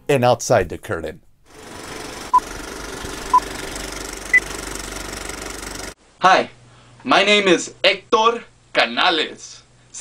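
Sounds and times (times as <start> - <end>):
film projector clatter: 1.5 - 6.0.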